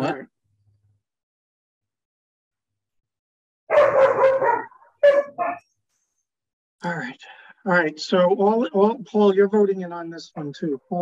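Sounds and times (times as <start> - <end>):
dog barking: 3.7 - 5.6.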